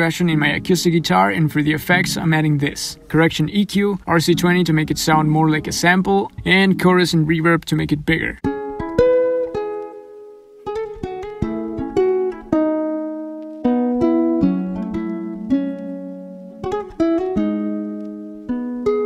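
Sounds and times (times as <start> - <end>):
fingerstyle acoustic guitar: 0.0 - 19.0.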